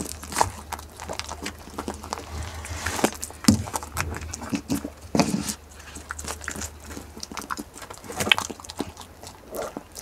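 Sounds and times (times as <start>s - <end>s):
goat chewing fruit: 0.0s - 10.0s
wet crunching: 0.0s - 10.0s.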